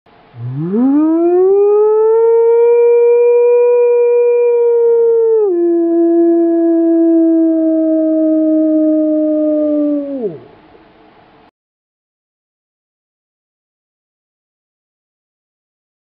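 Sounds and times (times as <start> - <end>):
wolf-style howl: 0.4 - 10.5.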